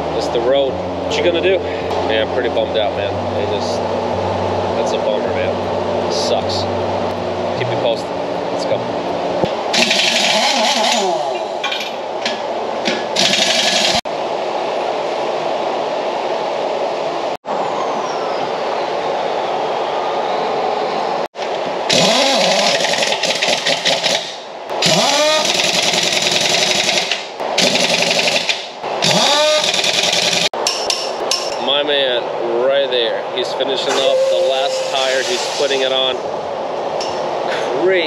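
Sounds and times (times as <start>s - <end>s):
steady noise: 33.6s - 38.0s.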